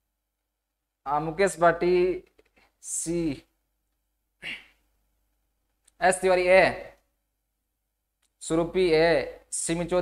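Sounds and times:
man sighing: 4.4s - 4.8s.

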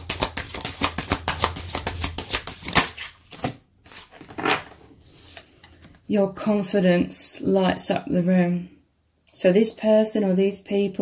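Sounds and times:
cards being shuffled: 0.0s - 6.0s.

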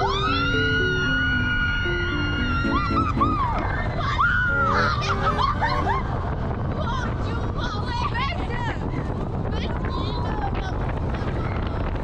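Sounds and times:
background music: 0.0s - 7.2s.

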